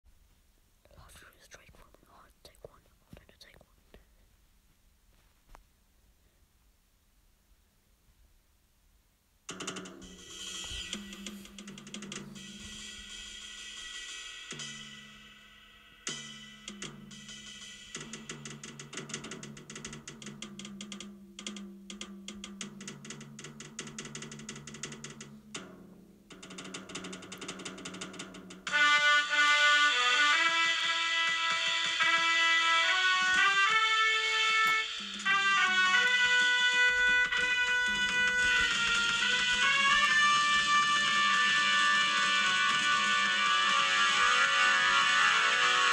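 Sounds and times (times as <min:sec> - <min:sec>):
person whispering: 0:00.8 - 0:04.3
jazz drum kit playing: 0:09.5 - 0:45.9
loud melody instrument: 0:28.7 - 0:45.9.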